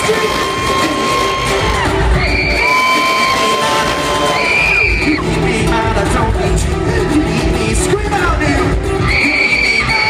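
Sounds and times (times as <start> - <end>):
crowd cheering: 0.0 - 5.4
live music through arena pa: 0.0 - 10.0.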